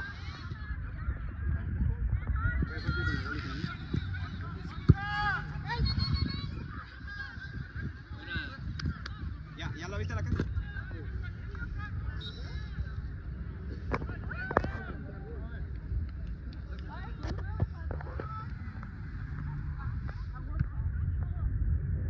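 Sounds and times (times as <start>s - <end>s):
wind rumble on microphone: 0.0s - 22.0s
soccer ball kicked: 2.7s - 6.6s.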